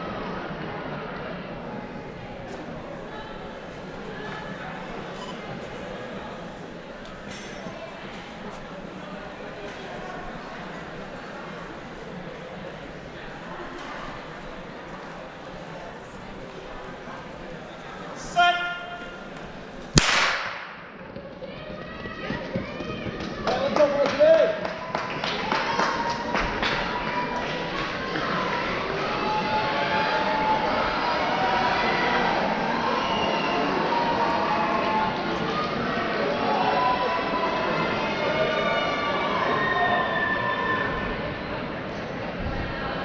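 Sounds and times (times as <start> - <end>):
starting pistol crack: 19.9 - 21.0
crowd clapping and cheering: 20.6 - 39.6.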